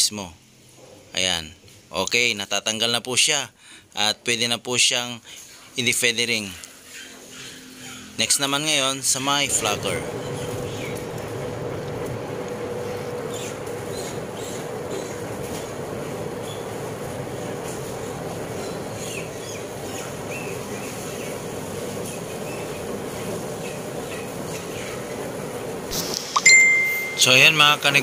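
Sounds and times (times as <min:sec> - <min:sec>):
faint hum: 0:08.7 - 0:28.0
gas burner rushing: 0:09.3 - 0:28.0.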